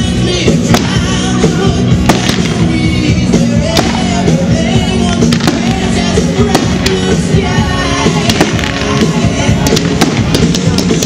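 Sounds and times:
fireworks bangs: 0:00.0 - 0:11.0
loud music: 0:00.0 - 0:11.0.

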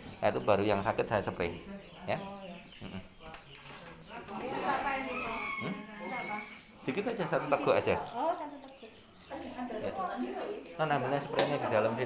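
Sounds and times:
rooster crowing: 0:04.6 - 0:06.6.

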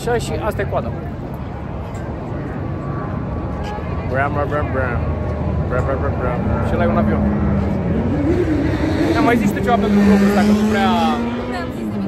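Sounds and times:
road traffic: 0:00.0 - 0:12.0
people talking: 0:09.0 - 0:12.0.

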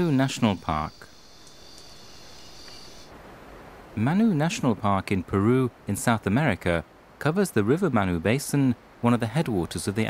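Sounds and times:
insects droning: 0:00.0 - 0:04.8
soft background hiss: 0:00.0 - 0:10.0.

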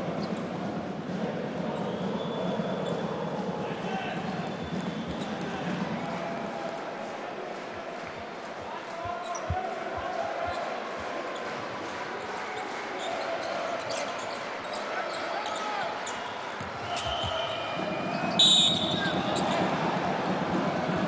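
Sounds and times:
arena crowd noise: 0:00.0 - 0:21.0
referee's whistle: 0:15.1 - 0:19.6.

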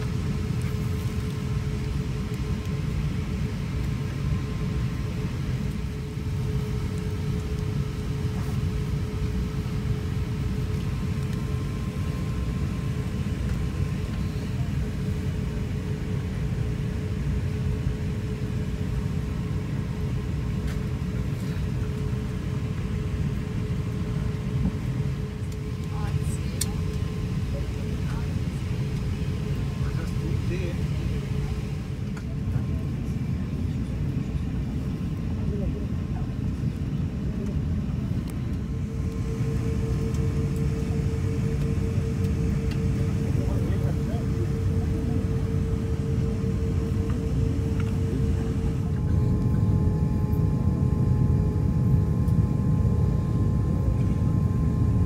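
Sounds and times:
air conditioning rumble: 0:00.0 - 0:55.0
constant hum: 0:00.0 - 0:55.0.

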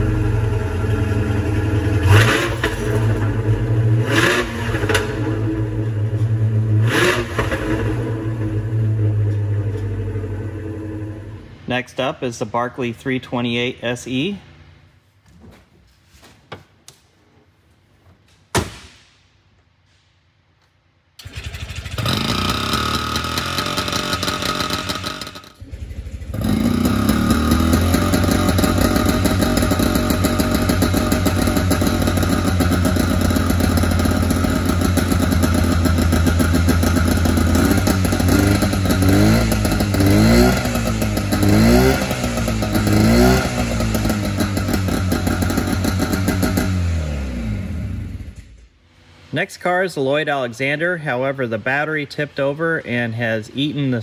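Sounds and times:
two-stroke car engine revving: 0:00.0 - 0:11.4, 0:21.2 - 0:48.4.

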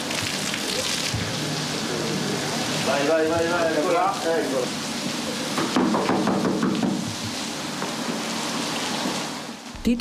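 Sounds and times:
heavy rain falling: 0:00.0 - 0:09.6.

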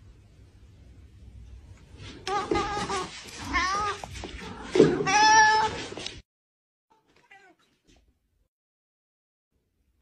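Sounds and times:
cat meowing: 0:04.9 - 0:05.8, 0:06.9 - 0:07.7.

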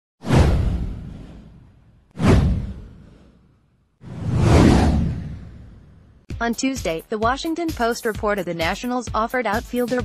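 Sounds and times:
deep boom: 0:00.2 - 0:03.3, 0:04.1 - 0:06.2
whoosh sound effect: 0:00.2 - 0:06.1.

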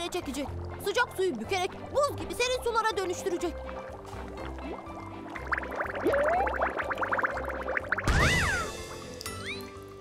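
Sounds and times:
cartoon bubbly pops: 0:03.0 - 0:09.6
cartoon rising tone: 0:06.0 - 0:06.8, 0:08.0 - 0:09.7.

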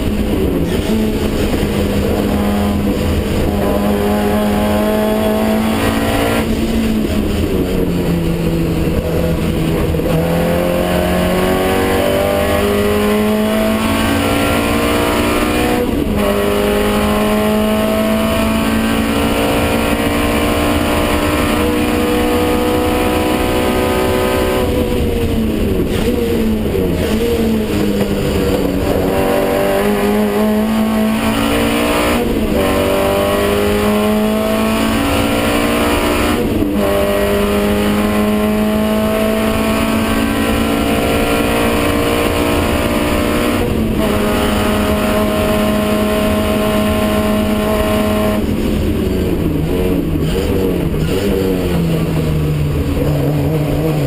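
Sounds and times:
race car engine revving: 0:00.0 - 0:54.0.

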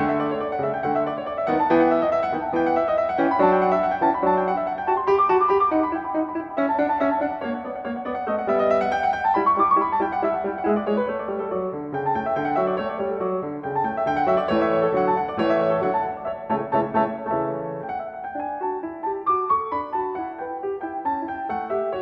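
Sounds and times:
solo classical piano: 0:00.0 - 0:22.0.

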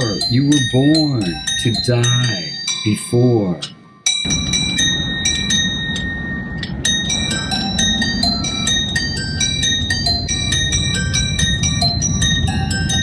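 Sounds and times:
steady low rumble: 0:00.0 - 0:02.5, 0:04.2 - 0:13.0
tinkling bell-like melody: 0:00.0 - 0:13.0.

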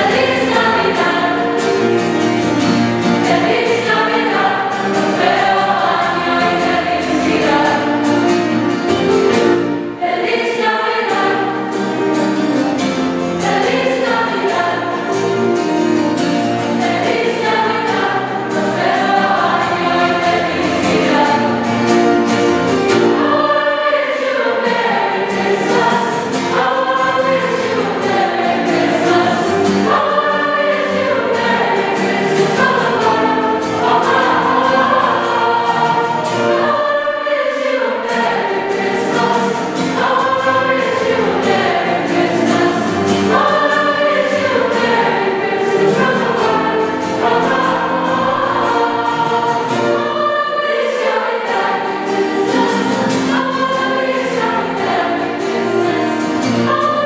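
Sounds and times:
choir singing in parts: 0:00.0 - 0:57.0.

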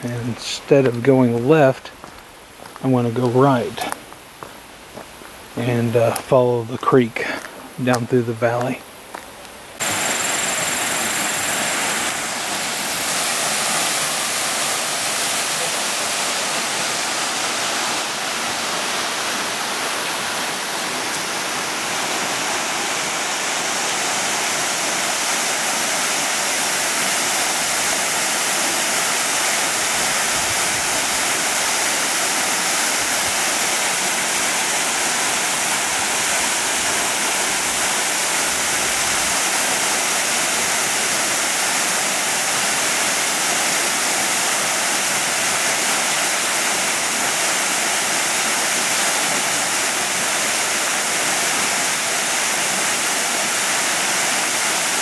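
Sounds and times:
waterfall rushing and splashing: 0:09.7 - 0:55.0.

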